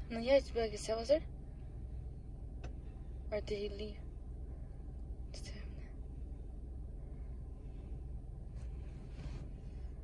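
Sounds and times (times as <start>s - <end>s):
low rumble inside car: 0.0s - 10.0s.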